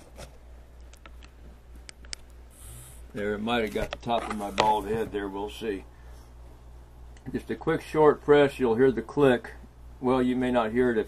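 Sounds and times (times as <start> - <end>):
clicks and handling noise: 0.0 - 2.4, 3.1 - 5.2
low steady hum: 0.0 - 11.0.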